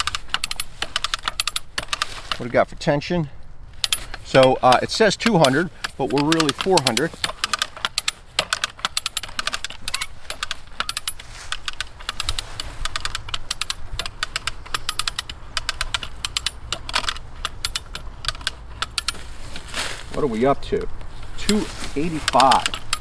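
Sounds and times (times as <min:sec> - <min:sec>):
ratchet pawl clicking: 0:00.0 - 0:02.3, 0:03.8 - 0:19.3, 0:21.4 - 0:23.0.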